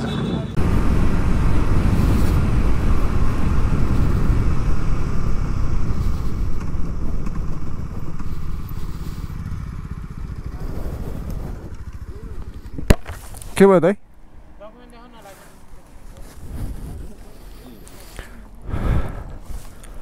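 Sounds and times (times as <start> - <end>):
motorcycle engine running: 0.0 - 13.2
wind rushing: 0.6 - 8.6, 10.3 - 12.9, 16.2 - 17.4.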